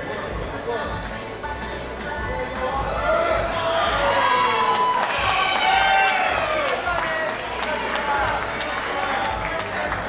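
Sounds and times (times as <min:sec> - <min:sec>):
audience shouting and cheering: 0:02.8 - 0:10.0.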